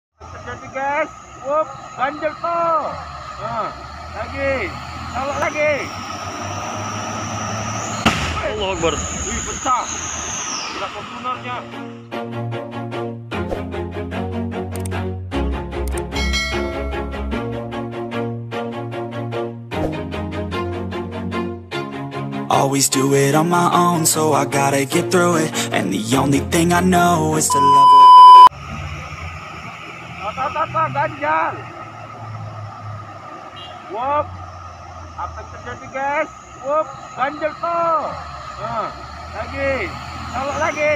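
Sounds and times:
traffic noise: 0.1s - 12.1s, 22.5s - 40.9s
high steady whine: 0.2s - 12.0s, 27.5s - 40.9s
cars driving uphill: 0.2s - 19.3s, 22.3s - 40.9s
truck diesel engine hum: 0.2s - 19.3s, 22.5s - 40.9s.

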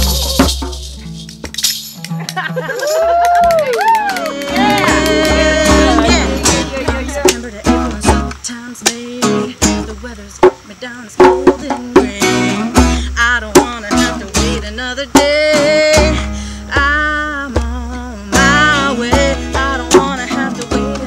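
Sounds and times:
acoustic guitars strummed: 0.0s - 21.0s
person singing wordless melody: 3.8s - 21.0s.

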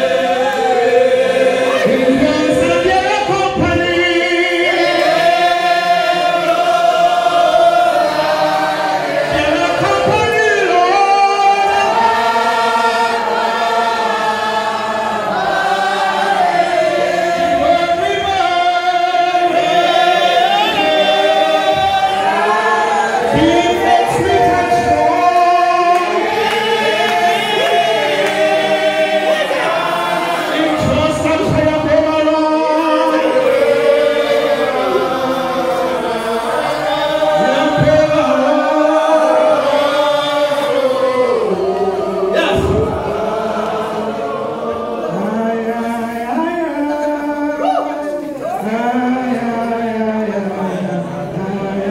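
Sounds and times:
man singing into a microphone: 0.0s - 5.5s, 9.2s - 13.4s, 16.9s - 28.0s, 30.3s - 44.2s, 45.0s - 51.9s
congregation singing a hymn: 0.0s - 51.9s.

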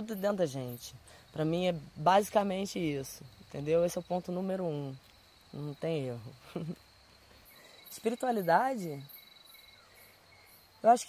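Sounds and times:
insects trilling: 0.0s - 11.0s
low pulsing insect chirp: 0.0s - 11.0s.

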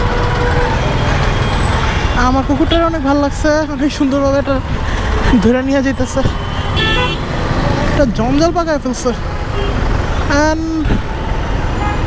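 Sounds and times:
low traffic noise: 0.0s - 12.0s.

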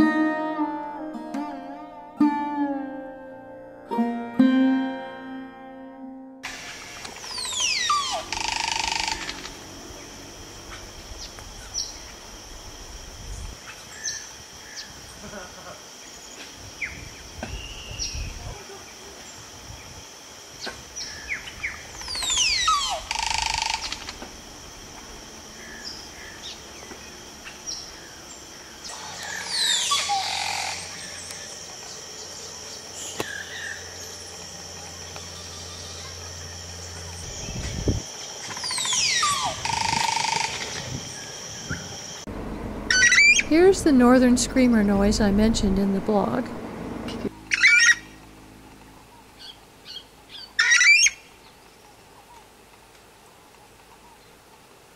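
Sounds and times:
high insect drone: 6.4s - 53.3s
birds singing gurgling calls: 7.1s - 10.1s, 20.6s - 24.2s, 25.6s - 34.4s, 35.2s - 42.2s, 47.4s - 48.2s.

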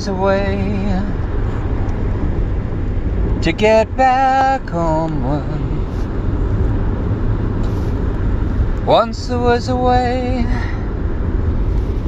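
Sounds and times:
car engine rumble: 0.0s - 12.0s
road noise hiss: 0.0s - 12.0s.

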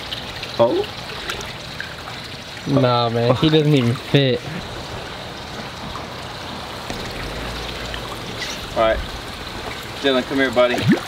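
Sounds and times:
water rushing and trickling: 0.0s - 11.0s.

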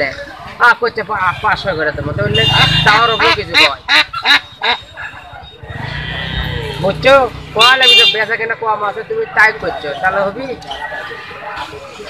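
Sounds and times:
ducks quacking: 2.4s - 6.7s.

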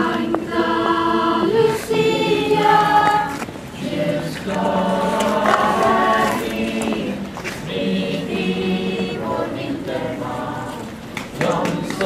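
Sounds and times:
choir of young voices singing: 0.0s - 12.0s.

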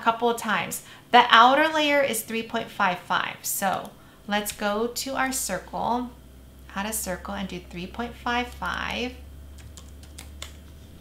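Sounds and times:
keyboard keys clicking: 9.6s - 10.8s.

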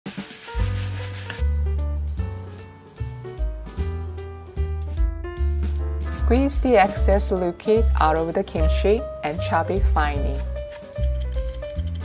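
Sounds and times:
food sizzling in oil: 0.1s - 1.6s
background music with bass: 0.5s - 12.0s.

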